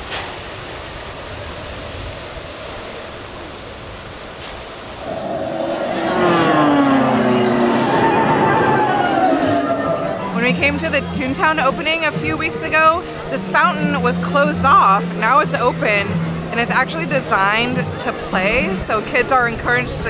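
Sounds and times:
crowd noise: 0:05.0 - 0:20.0.

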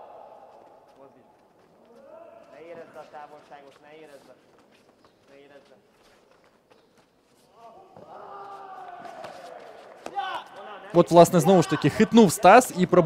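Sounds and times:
commentary: 0:10.1 - 0:13.0.

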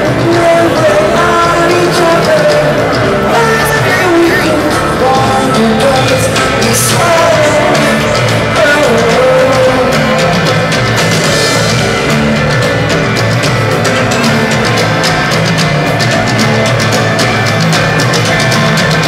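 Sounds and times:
live rock band playing: 0:00.0 - 0:19.0
person singing with pitch slides: 0:00.0 - 0:19.0.

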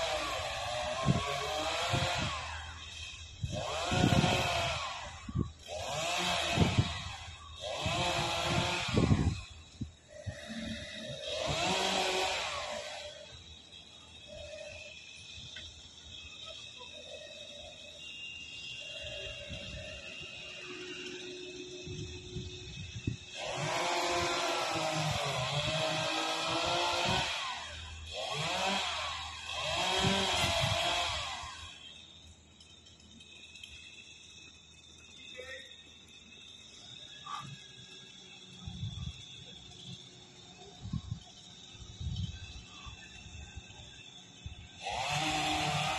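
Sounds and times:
chainsaw cutting branches: 0:00.0 - 0:45.9.

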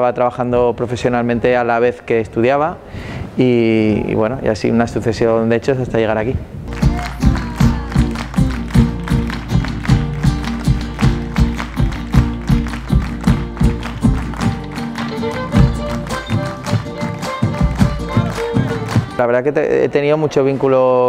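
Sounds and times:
acoustic guitars: 0:06.7 - 0:19.2
bass drum beat: 0:06.7 - 0:19.2
hand-clapping: 0:06.7 - 0:19.2
live folk band playing: 0:06.7 - 0:19.2
violin: 0:06.7 - 0:19.4.

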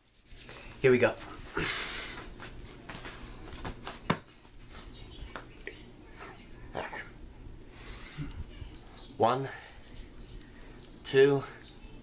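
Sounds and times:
soft taps and rustles: 0:02.2 - 0:06.4.

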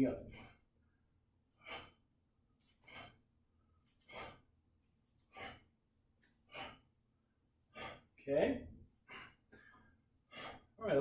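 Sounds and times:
man's breathy exhalations: 0:00.3 - 0:00.7, 0:01.5 - 0:04.5, 0:05.2 - 0:05.7, 0:06.4 - 0:06.9, 0:07.6 - 0:08.2, 0:09.0 - 0:10.8.

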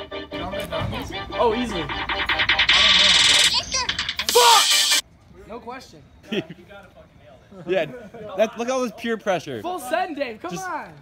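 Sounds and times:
music: 0:00.0 - 0:05.0
loud high-pitched burst: 0:02.1 - 0:05.0.

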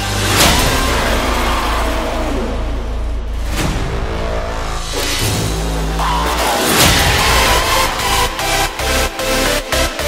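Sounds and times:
held deep bass: 0:00.0 - 0:09.6.

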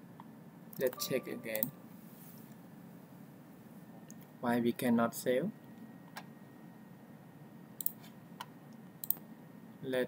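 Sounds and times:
computer mouse clicks: 0:07.8 - 0:09.2.

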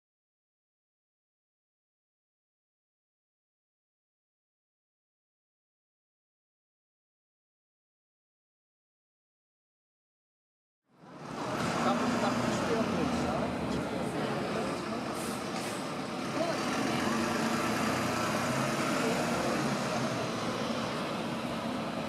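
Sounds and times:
traffic: 0:10.9 - 0:22.0
bus engine running: 0:11.0 - 0:22.0
indistinct voices: 0:11.4 - 0:22.0.

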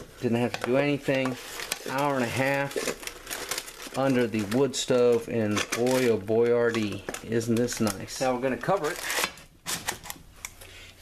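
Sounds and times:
parchment paper rustling: 0:00.0 - 0:10.2.

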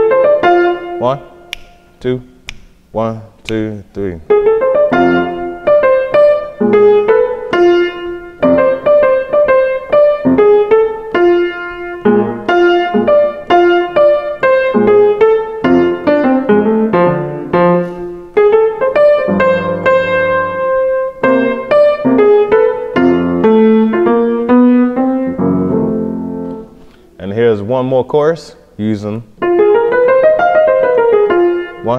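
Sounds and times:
grand piano playing jazz blues: 0:00.0 - 0:01.8, 0:04.3 - 0:26.9, 0:29.4 - 0:31.9.

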